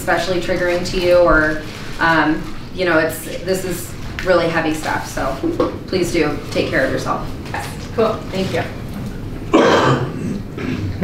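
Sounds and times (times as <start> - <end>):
person coughing: 9.5 - 11.0.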